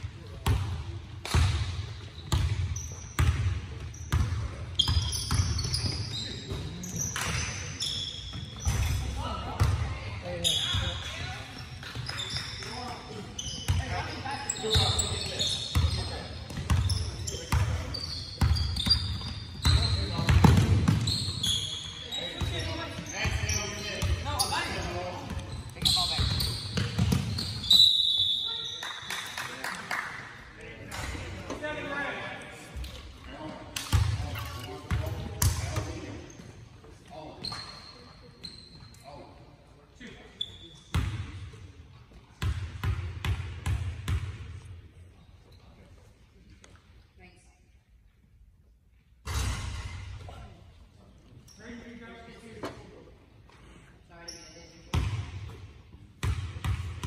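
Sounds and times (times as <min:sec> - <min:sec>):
sneakers squeaking: 0:00.4 - 0:29.4, 0:33.8 - 0:39.4, 0:40.3 - 0:41.4, 0:51.2 - 0:52.9, 0:54.2 - 0:55.6.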